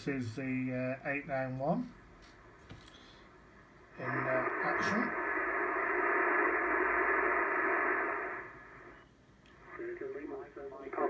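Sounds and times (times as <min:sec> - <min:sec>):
radio static rush: 0:03.8 - 0:11.0
voice over radio: 0:04.0 - 0:05.4, 0:09.6 - 0:11.0.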